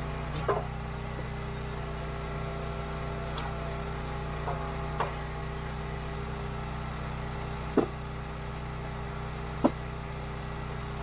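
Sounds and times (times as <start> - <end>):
log splitter engine running: 0.0 - 11.0
firewood landing knock: 7.8 - 8.0, 9.6 - 9.8.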